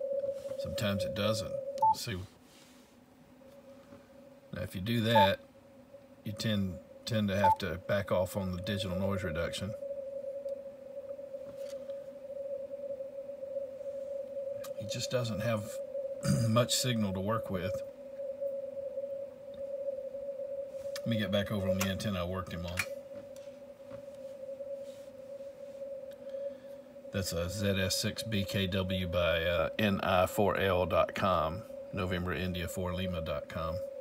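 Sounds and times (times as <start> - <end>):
narrow band radio noise: 0.0 - 2.2, 4.6 - 5.4, 6.3 - 9.8, 21.0 - 22.9, 27.2 - 34.0
faint hiss: 0.0 - 34.0.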